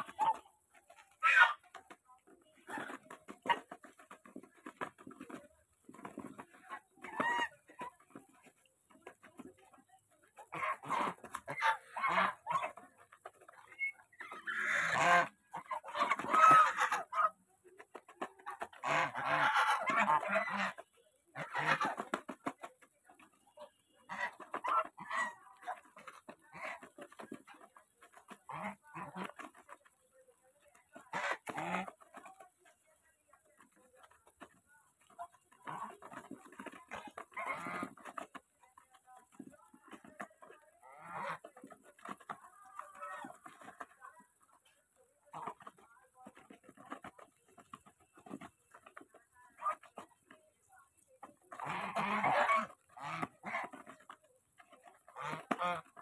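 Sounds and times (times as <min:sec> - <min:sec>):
geese bills clattering in grain: 0:00.0 - 0:56.0.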